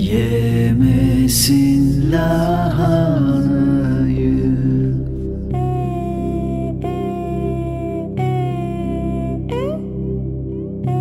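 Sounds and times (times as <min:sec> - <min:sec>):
man singing lullaby: 0:00.0 - 0:06.8
low musical accompaniment: 0:00.0 - 0:11.0.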